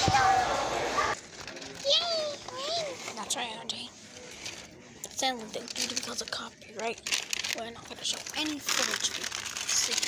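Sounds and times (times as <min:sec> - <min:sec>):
children chattering in echoing hall: 0:00.0 - 0:04.0, 0:05.1 - 0:10.0.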